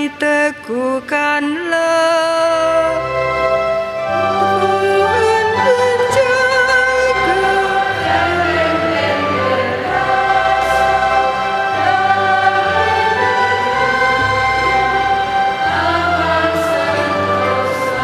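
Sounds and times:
choir singing a psalm: 2.9 - 18.0
low accompaniment: 3.0 - 18.0.

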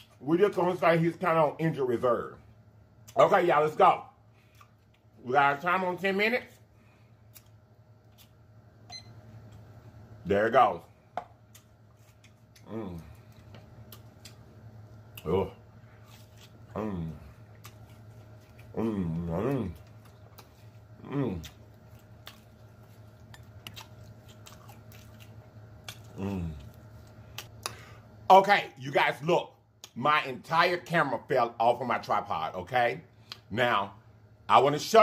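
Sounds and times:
steady low hum: 0.0 - 35.0
wet chewing mouth clicks: 17.5 - 27.8.

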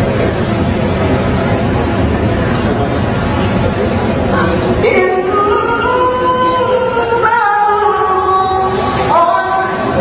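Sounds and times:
man chanting over microphone: 4.3 - 10.0.

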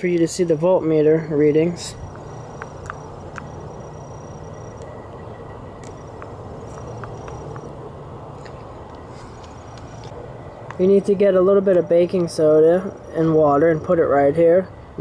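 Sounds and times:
faint hum: 0.0 - 15.0.

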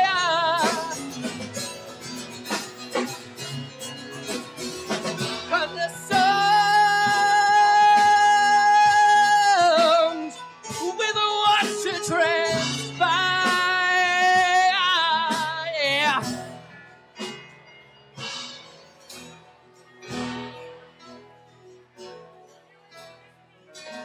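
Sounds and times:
acoustic guitar: 0.0 - 24.0.

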